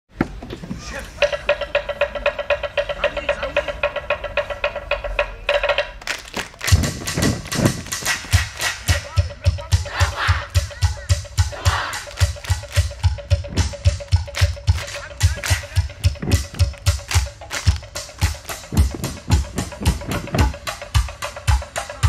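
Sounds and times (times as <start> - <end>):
fast roll on wooden percussion: 1.2 - 9.7, 10.9 - 22.0
sharp claps and slaps: 6.0 - 9.2, 12.0 - 20.6
deep thumps: 6.7 - 9.4, 15.8 - 21.1
voices chanting: 7.2 - 22.0.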